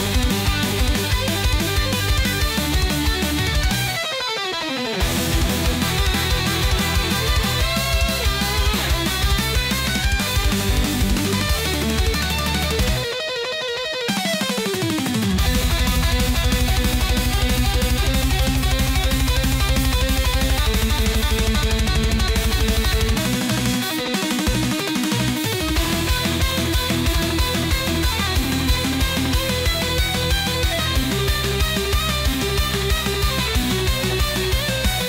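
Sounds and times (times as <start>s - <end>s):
fast steady beat: 0.0s - 35.0s
rock music with electric guitar: 0.0s - 35.0s.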